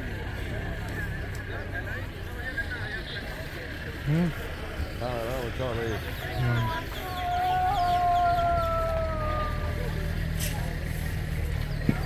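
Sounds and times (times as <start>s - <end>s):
murmur of crowd: 0.0s - 12.0s.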